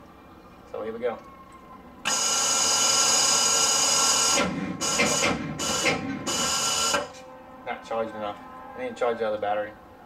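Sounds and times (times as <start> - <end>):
electric starter motor whirring: 2.1 - 7.2.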